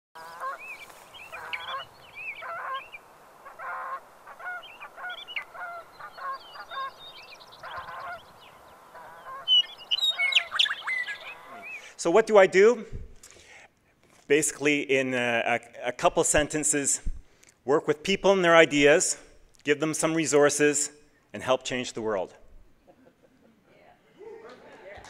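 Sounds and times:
geese honking: 0.2s - 12.0s
sharp high bird calls: 0.2s - 12.0s.

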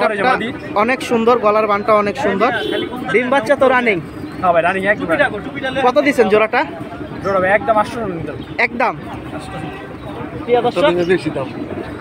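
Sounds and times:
men's voices: 0.0s - 12.0s.

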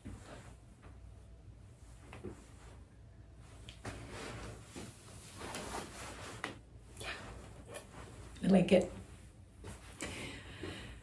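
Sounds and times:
clothing rustling: 0.0s - 10.9s.

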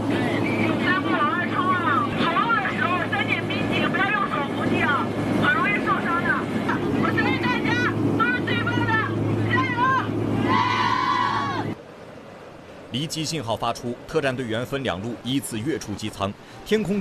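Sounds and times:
aircraft cabin drone: 0.0s - 11.8s.

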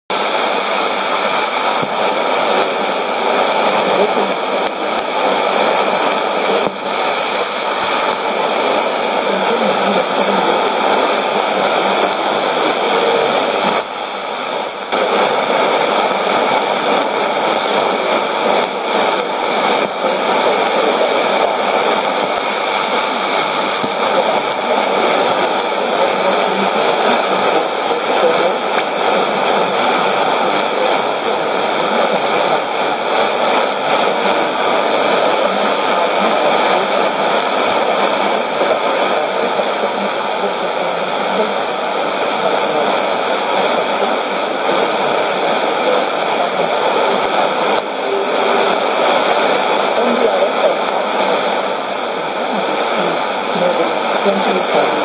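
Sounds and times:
radio static and hiss: 0.0s - 55.0s
thin high whistle: 0.2s - 1.9s, 6.7s - 8.2s, 22.3s - 24.1s.

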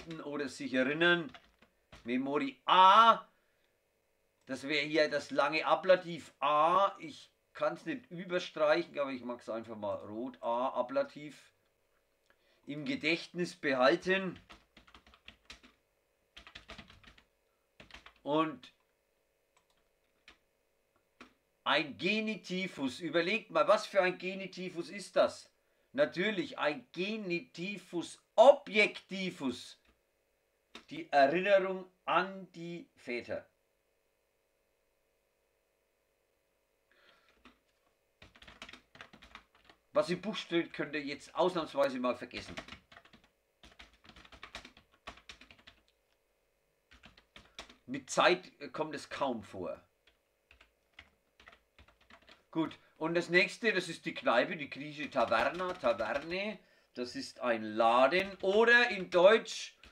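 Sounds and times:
typing on computer keyboard: 0.0s - 0.2s, 1.2s - 2.1s, 14.2s - 15.8s, 16.4s - 18.2s, 19.6s - 20.4s, 30.7s - 30.9s, 37.2s - 39.8s, 42.3s - 46.0s, 46.9s - 47.8s, 50.0s - 52.8s, 54.7s - 56.4s, 58.1s - 59.2s.

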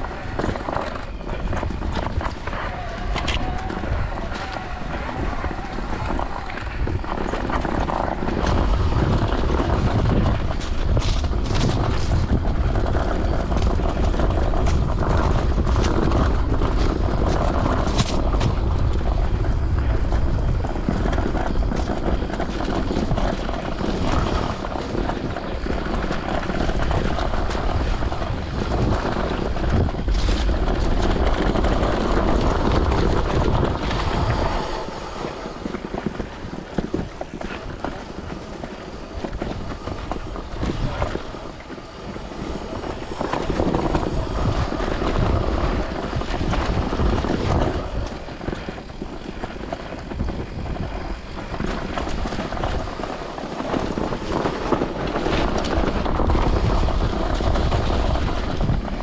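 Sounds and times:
bike rattling over rough ground: 0.0s - 59.0s
bike tyre noise: 0.0s - 59.0s
wind rumble on microphone: 0.0s - 59.0s.

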